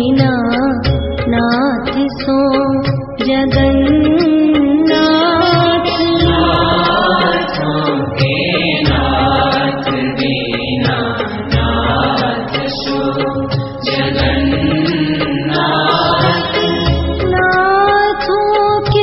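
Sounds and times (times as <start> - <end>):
deep drum beat: 0.0 - 4.8, 5.4 - 19.0
chanted vocals: 4.9 - 18.3.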